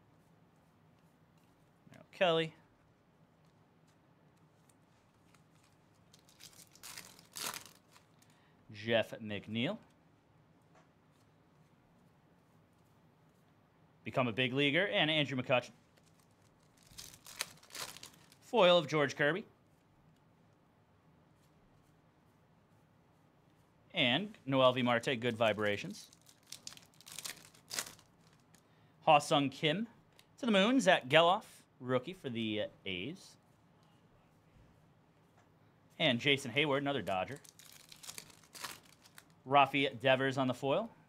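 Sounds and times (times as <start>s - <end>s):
plastic foil wrapper crinkling: 4.6s - 8.4s, 15.8s - 18.4s, 25.4s - 28.6s, 37.3s - 39.4s.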